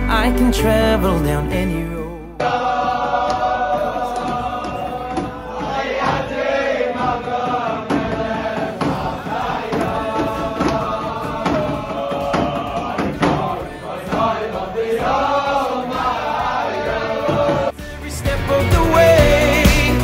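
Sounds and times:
young men singing together: 0:02.4 - 0:20.0.

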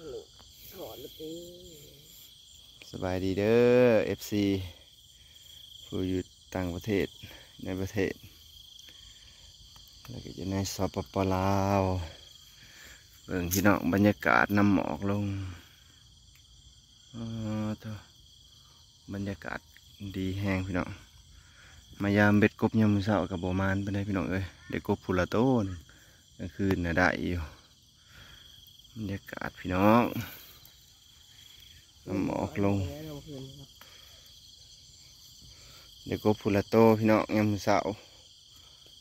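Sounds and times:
insects trilling: 0:00.0 - 0:39.0
man speaking: 0:02.8 - 0:04.8, 0:05.9 - 0:08.3, 0:10.1 - 0:12.3, 0:13.2 - 0:15.6, 0:17.2 - 0:18.1, 0:19.1 - 0:21.0, 0:22.0 - 0:25.8, 0:26.4 - 0:27.6, 0:29.0 - 0:30.6, 0:32.0 - 0:34.0, 0:36.0 - 0:38.2.

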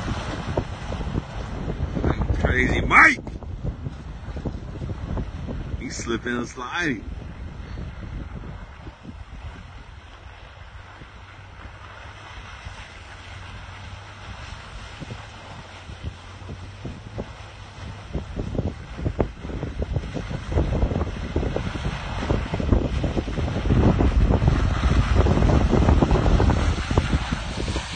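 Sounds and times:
pickup truck engine rumble: 0:00.0 - 0:27.9
wind buffeting microphone: 0:00.0 - 0:27.9.

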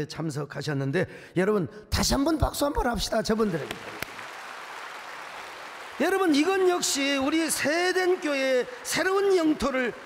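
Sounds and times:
crowd applauding: 0:03.3 - 0:10.0.

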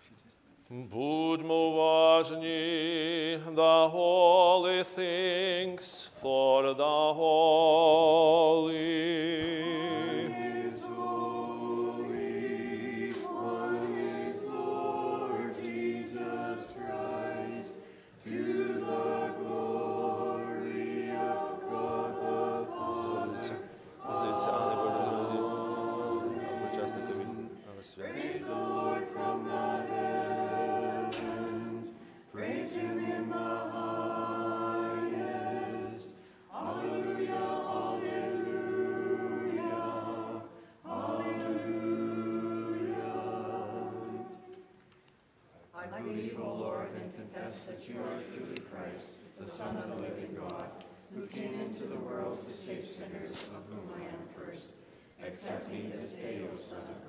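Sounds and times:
choir singing a cappella: 0:00.7 - 0:44.9, 0:45.7 - 0:57.0.

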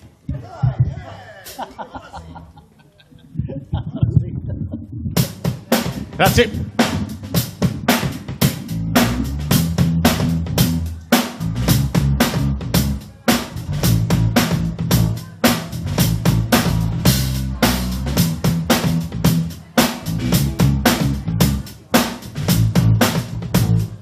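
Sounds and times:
drum kit beat: 0:00.3 - 0:01.9, 0:05.0 - 0:24.0
bass guitar: 0:03.4 - 0:24.0.

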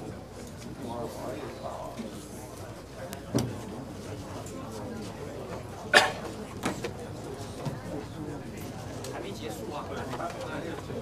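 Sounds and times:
background chatter: 0:00.0 - 0:11.0.

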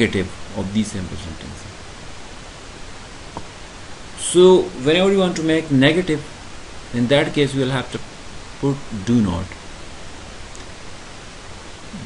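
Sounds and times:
faint low hum: 0:00.0 - 0:12.0
microphone hiss: 0:00.0 - 0:12.0.

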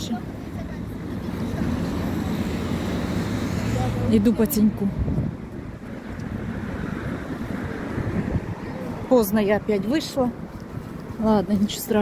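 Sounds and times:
low rumble of passing vehicles: 0:00.0 - 0:12.0.

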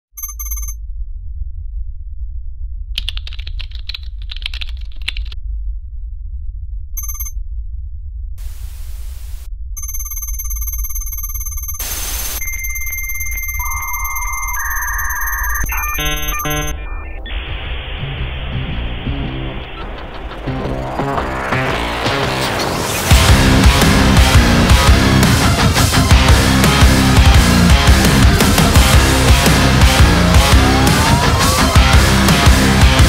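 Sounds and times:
short beeps: 0:00.2 - 0:00.8, 0:07.0 - 0:07.4, 0:09.8 - 0:17.4
low electronic hum: 0:00.2 - 0:22.4
crackling data noise: 0:07.0 - 0:07.4, 0:08.4 - 0:23.1
held beeps stepping in pitch: 0:09.8 - 0:17.4
high electronic tones: 0:09.8 - 0:21.8.

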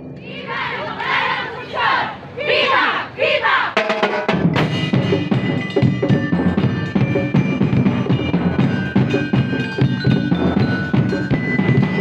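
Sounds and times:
crowd shouting a chant: 0:00.2 - 0:03.8.

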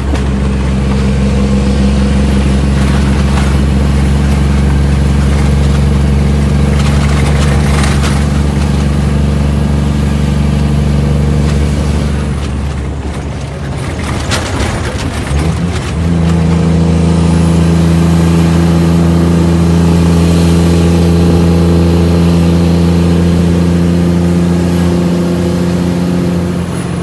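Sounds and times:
truck diesel engine from cab: 0:00.0 - 0:27.0.

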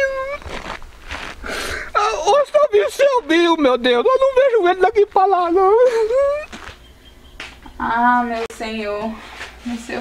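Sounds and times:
breathy sighing and exhaling: 0:01.3 - 0:02.1.

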